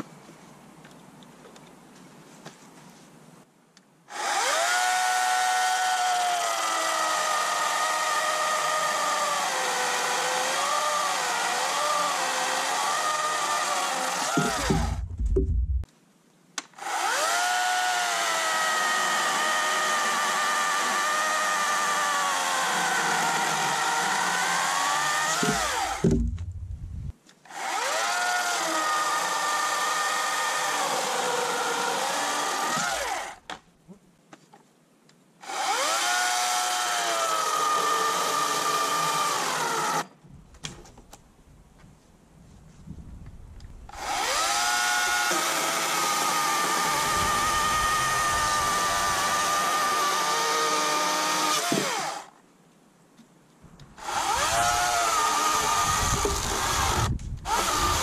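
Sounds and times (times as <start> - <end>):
electric chainsaw cutting wood: 4.1 - 15.1, 16.8 - 26.3, 27.5 - 33.4, 35.4 - 40.1, 43.9 - 52.4, 54.0 - 58.0
low thumps: 14.3 - 15.9, 25.4 - 27.1.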